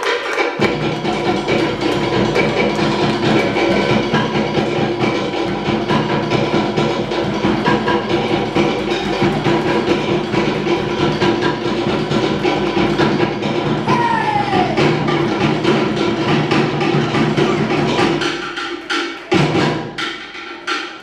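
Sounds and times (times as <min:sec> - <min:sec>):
wooden slit drums: 0:00.0 - 0:21.0
deep drum beat: 0:00.6 - 0:20.1.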